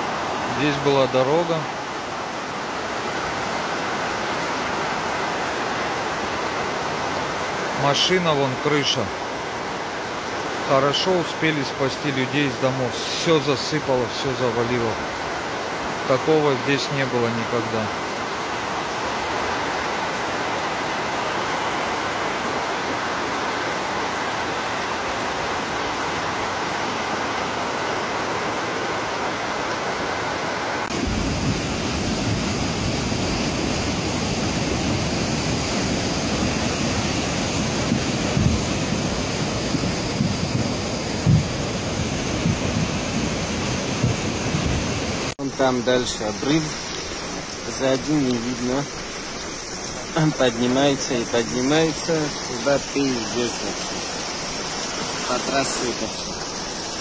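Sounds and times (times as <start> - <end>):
flood torrent rushing: 0.0 - 57.0.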